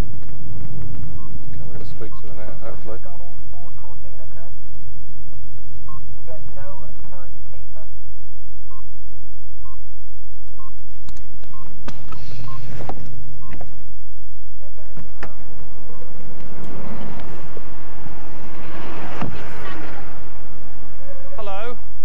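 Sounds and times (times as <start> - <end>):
steady low hum: 0.0 - 22.0
short electronic beep: 12.4 - 12.7.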